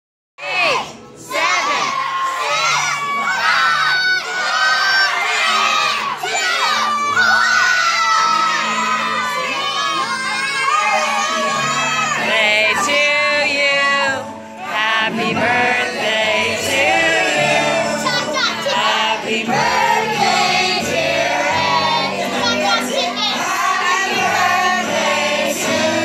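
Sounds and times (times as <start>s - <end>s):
children shouting and cheering: 0.4s - 26.0s.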